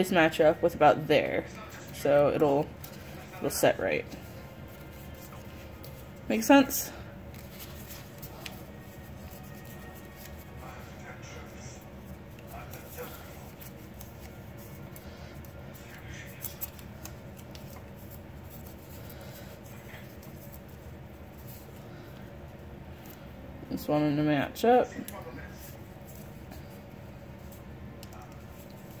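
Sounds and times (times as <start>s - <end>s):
steady hum: 0.0s - 29.0s
paper crinkling and rustling: 1.4s - 6.7s, 7.3s - 23.3s, 24.9s - 29.0s.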